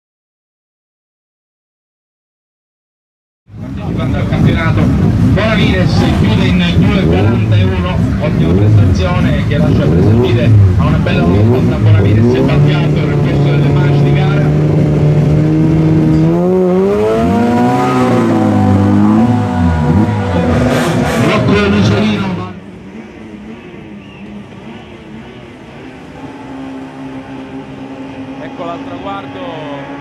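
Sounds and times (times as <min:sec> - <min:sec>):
car driving off: 0:03.5 - 0:30.0
car engine idling and revving: 0:03.5 - 0:30.0.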